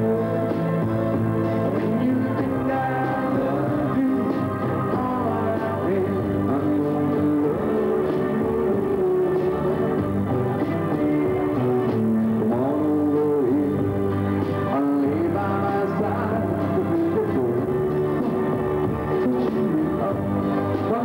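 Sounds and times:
live pop band music: 0:00.0 - 0:21.0
sliding guitar melody: 0:00.0 - 0:21.0.

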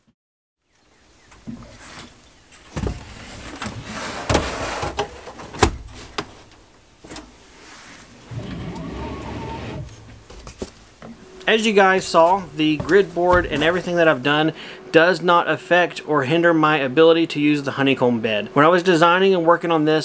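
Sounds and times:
motors whirring: 0:08.3 - 0:10.2.

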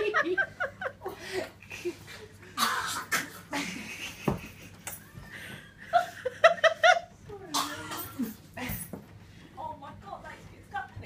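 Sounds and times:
person laughing: 0:03.2 - 0:07.1.

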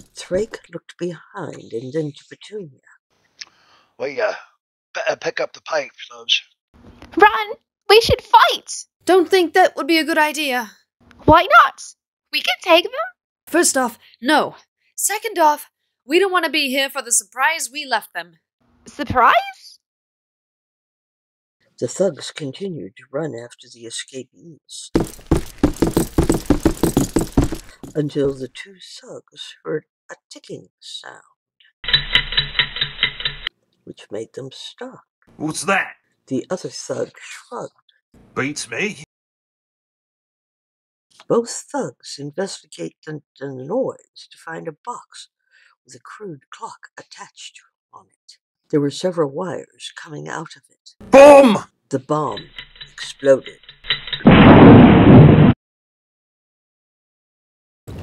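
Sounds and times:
running footsteps: 0:25.0 - 0:28.0, 0:52.3 - 0:54.3
bomb explosion: 0:54.2 - 0:55.5.

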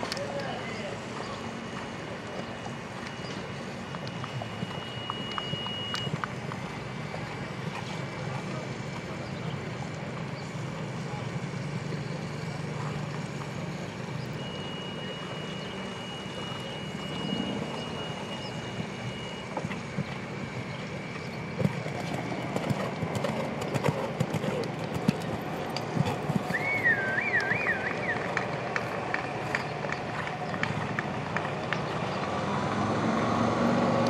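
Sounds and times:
distant voices: 0:00.0 - 0:34.0
low engine-like hum: 0:00.0 - 0:34.0
high steady tone: 0:00.6 - 0:06.3, 0:14.2 - 0:28.8
horse trotting on sand: 0:19.0 - 0:31.9.

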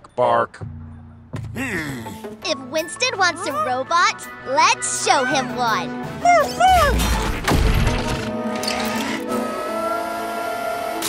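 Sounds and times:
background music: 0:00.0 - 0:11.0
robot mechanical whirring: 0:08.0 - 0:09.6.

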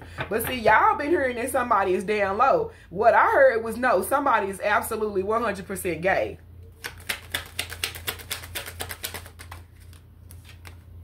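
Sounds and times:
cards shuffling with crisp clicks: 0:06.7 - 0:11.0.

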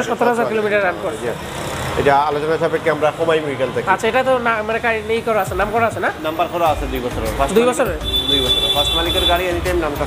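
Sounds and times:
steady background noise: 0:00.0 - 0:10.0
man talking: 0:02.0 - 0:10.0.

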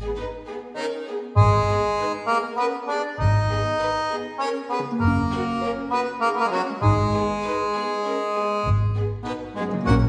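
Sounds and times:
accordion music: 0:00.0 - 0:10.0.

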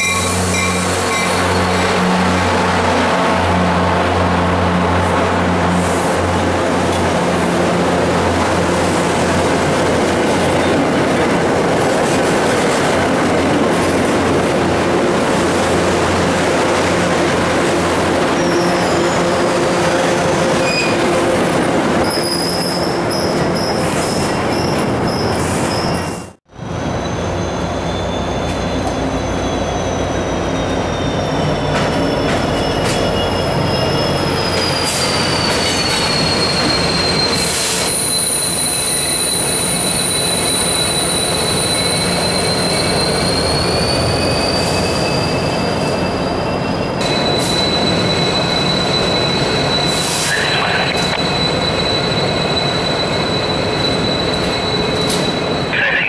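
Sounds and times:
train wheels squealing on rails: 0:00.0 - 0:02.0, 0:17.8 - 0:21.3, 0:22.0 - 0:56.0
passenger coaches rolling past: 0:00.0 - 0:56.0
diesel locomotive running: 0:26.4 - 0:56.0.

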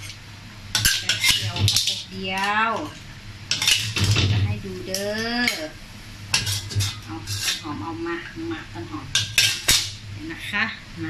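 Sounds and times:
metal spatula scraping a wok: 0:00.8 - 0:04.3, 0:06.3 - 0:08.0, 0:09.1 - 0:10.0.

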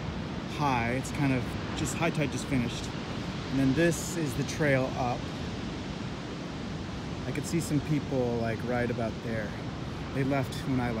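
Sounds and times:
rushing outdoor noise: 0:00.0 - 0:11.0
man speaking: 0:00.5 - 0:02.9, 0:03.5 - 0:05.2, 0:07.2 - 0:11.0.

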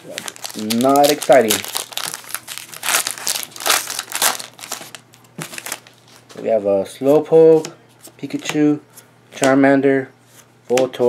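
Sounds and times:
foil wrapper crinkling: 0:00.0 - 0:06.3.

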